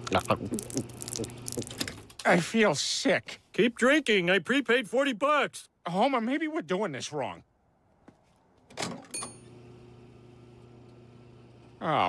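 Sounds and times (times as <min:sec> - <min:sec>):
pump electric hum: 0:00.0 - 0:02.2, 0:09.2 - 0:12.0
gas pump bell ding: 0:09.2 - 0:09.5.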